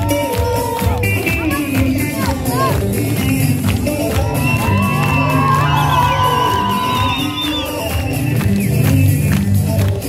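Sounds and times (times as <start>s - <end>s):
dance music with steady beat: 0.0s - 10.0s
guests whooping and cheering: 3.9s - 8.9s.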